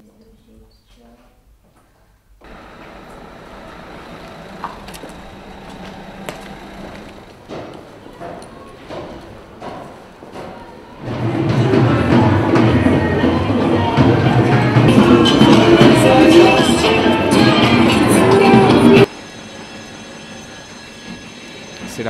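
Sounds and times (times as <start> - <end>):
crowd noise: 2.4 - 19.1
city street ambience: 2.4 - 22.0
loud music with drum beat: 11.1 - 19.1.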